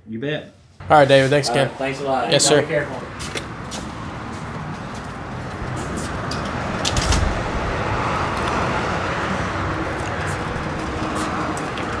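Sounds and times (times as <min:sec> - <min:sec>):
road traffic hiss: 0:00.8 - 0:12.0
footsteps on pavement: 0:03.1 - 0:06.8, 0:09.6 - 0:12.0
low bump: 0:05.6 - 0:11.0.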